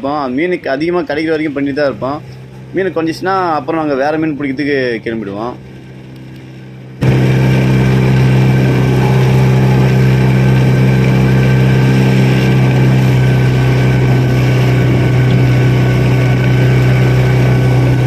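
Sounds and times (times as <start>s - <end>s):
outboard motor running: 0.0s - 18.0s.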